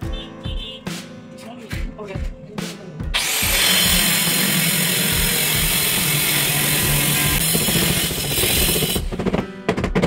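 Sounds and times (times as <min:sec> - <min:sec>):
power tool grinding: 0:03.2 - 0:09.1.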